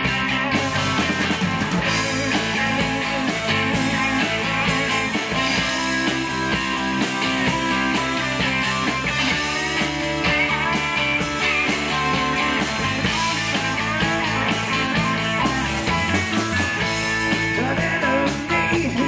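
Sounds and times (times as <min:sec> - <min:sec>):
drum kit beat: 0:00.0 - 0:19.0
electric guitars: 0:00.0 - 0:19.0.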